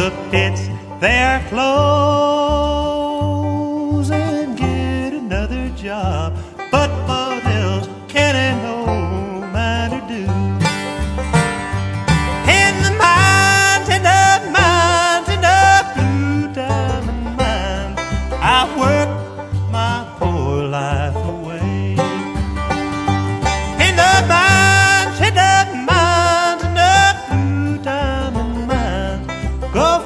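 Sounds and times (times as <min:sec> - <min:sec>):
bluegrass string instruments: 0:00.0 - 0:30.0.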